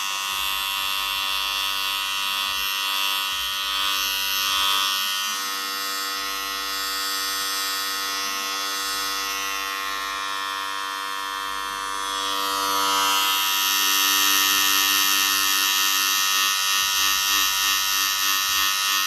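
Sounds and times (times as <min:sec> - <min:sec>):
electric hair clippers buzzing: 0:00.0 - 0:19.0.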